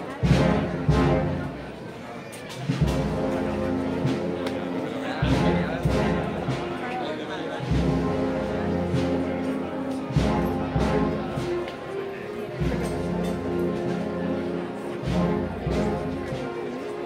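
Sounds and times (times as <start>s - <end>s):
low drum notes: 0.0s - 1.8s, 2.6s - 7.0s, 7.6s - 11.8s, 12.6s - 16.8s
wind band playing march: 0.0s - 1.9s, 2.6s - 17.0s
crowd voices: 0.0s - 17.0s.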